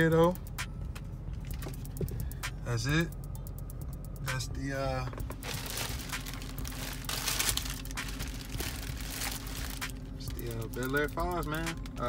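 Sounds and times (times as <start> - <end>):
plastic bag crinkling: 5.4 - 11.0.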